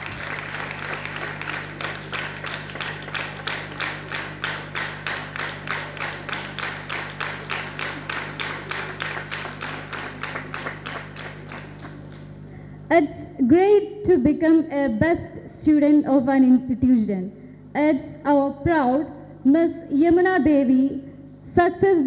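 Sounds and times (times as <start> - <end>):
audience clapping in unison: 0.0 - 12.4
steady low hum: 0.0 - 22.0.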